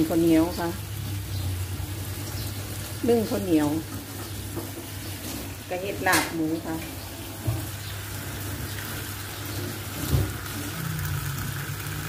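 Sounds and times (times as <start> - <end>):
water boiling with low hum: 0.0 - 12.0.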